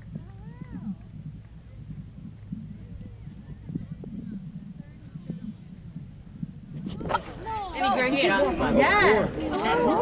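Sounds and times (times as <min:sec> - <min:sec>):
distant voices: 0:00.0 - 0:10.0
steady low rumble: 0:00.0 - 0:10.0.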